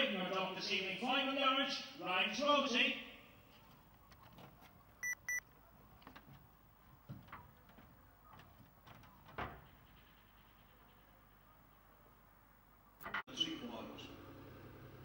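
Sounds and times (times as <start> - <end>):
short electronic beeps: 5.0 - 5.4.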